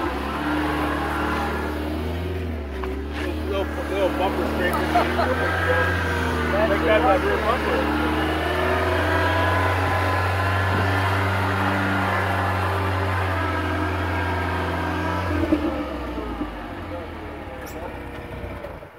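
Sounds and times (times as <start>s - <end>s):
pickup truck engine running: 0.0s - 18.9s.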